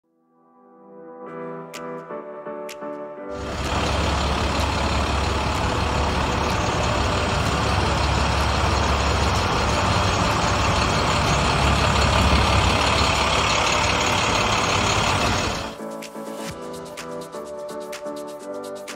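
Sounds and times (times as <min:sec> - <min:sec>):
diesel truck engine idling: 0:03.4 - 0:15.8.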